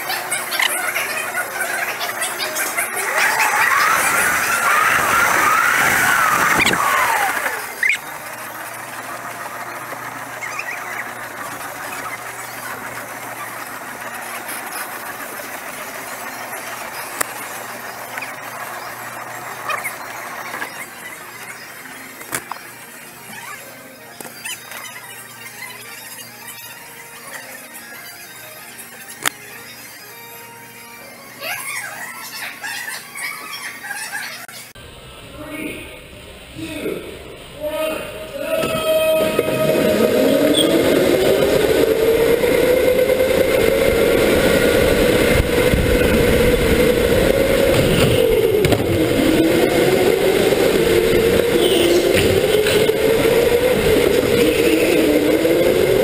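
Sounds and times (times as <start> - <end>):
go-kart tyres squealing: 0.0 - 23.7, 37.6 - 56.0
go-kart engine running: 0.0 - 33.1, 37.6 - 56.0.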